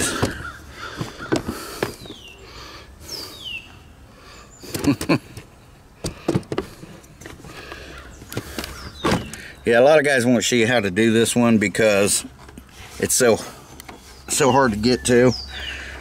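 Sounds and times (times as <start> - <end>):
camera handling knocks and rustles: 0.0 - 2.2, 6.0 - 9.4.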